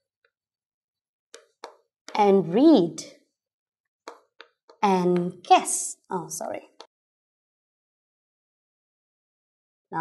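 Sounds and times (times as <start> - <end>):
chalk tapping on blackboard: 1.3 - 2.2, 4.0 - 5.4.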